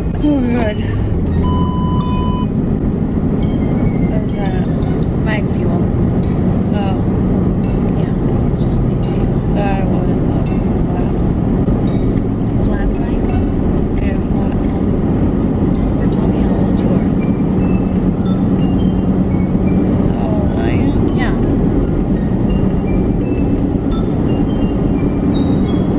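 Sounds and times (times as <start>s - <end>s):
car interior road rumble: 0.0s - 25.9s.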